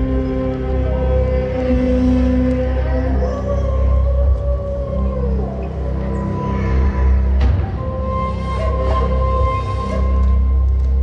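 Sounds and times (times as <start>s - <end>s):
dark atmospheric music: 0.0s - 11.0s.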